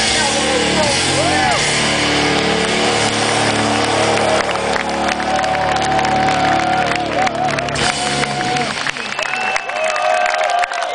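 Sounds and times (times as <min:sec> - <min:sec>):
rock band chord ringing: 0:00.0 - 0:08.7
crowd cheering: 0:00.1 - 0:10.9.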